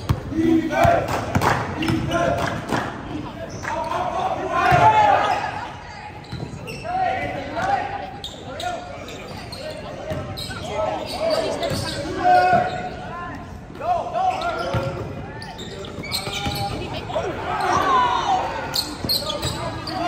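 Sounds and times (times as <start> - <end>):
players' voices echoing: 0.0 - 20.0
sneakers squeaking: 1.7 - 2.6, 3.2 - 20.0.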